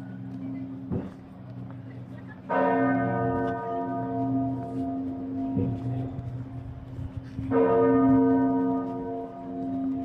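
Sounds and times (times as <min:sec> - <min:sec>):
large church bells ringing: 0:00.0 - 0:10.0.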